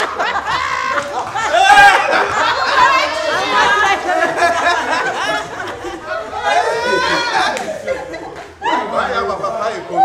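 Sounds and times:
group of people chattering: 0.0 - 10.0.

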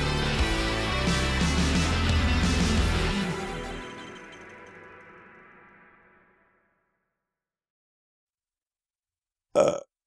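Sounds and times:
person vocal sound: 9.6 - 9.9.

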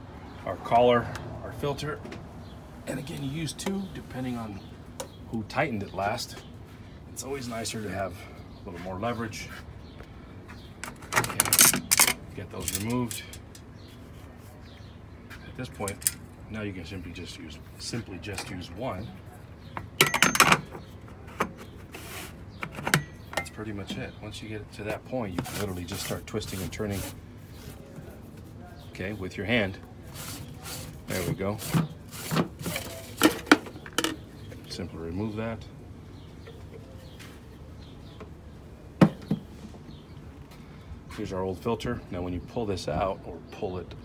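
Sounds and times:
metal wrench clanking: 20.0 - 20.7.

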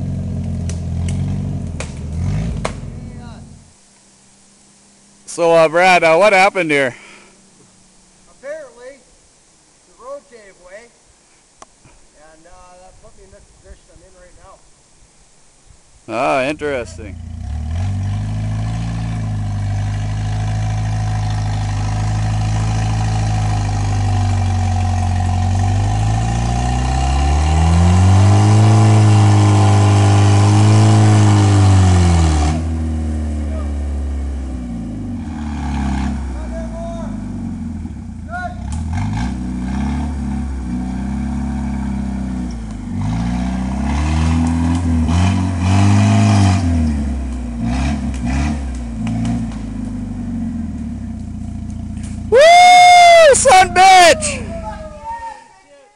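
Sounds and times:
car engine revving under load: 0.0 - 3.8, 16.7 - 55.0.

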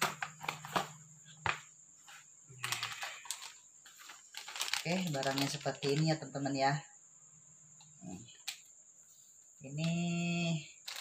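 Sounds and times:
plastic bag crinkling: 2.6 - 6.1.

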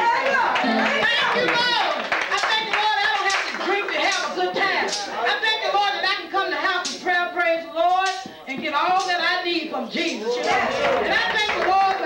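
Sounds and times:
hands clapping: 0.2 - 5.1, 8.0 - 8.4, 9.0 - 9.2, 10.0 - 12.0
voice through a microphone: 0.6 - 1.7.

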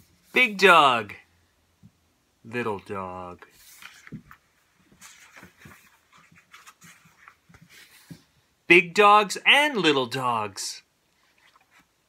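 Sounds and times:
book pages turning: 3.5 - 8.3.

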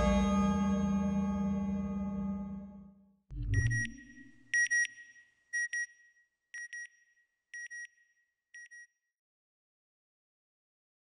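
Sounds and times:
high electronic beeps in pairs: 3.4 - 5.9.

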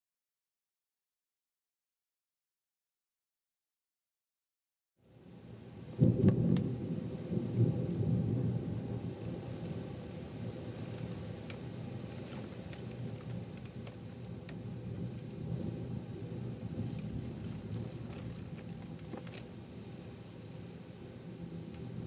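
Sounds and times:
rain and wind: 5.0 - 22.0
thunder rumbling: 5.7 - 22.0
raindrops ticking close by: 6.0 - 22.0.

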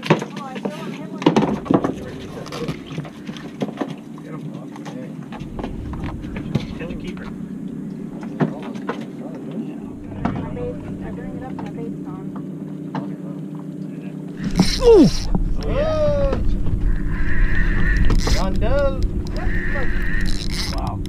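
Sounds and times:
boat engine humming: 0.5 - 21.0.

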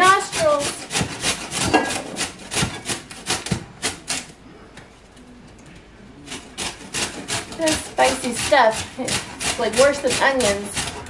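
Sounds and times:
root grated on metal grater: 0.0 - 4.3, 6.3 - 11.0.

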